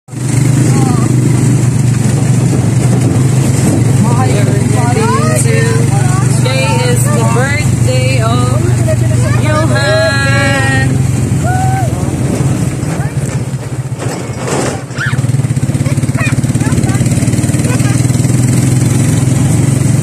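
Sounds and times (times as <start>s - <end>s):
motorcycle engine humming: 0.1s - 20.0s
high-pitched voices talking: 4.0s - 12.0s.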